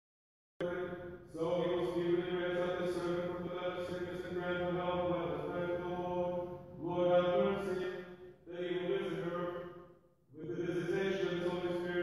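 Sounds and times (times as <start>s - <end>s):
person chanting prayers: 0.6s - 9.7s, 10.3s - 12.0s.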